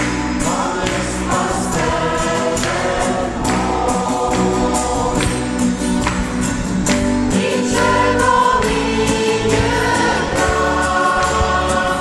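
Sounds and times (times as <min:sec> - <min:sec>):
congregation singing: 0:00.0 - 0:12.0
people clapping on the beat: 0:00.0 - 0:12.0.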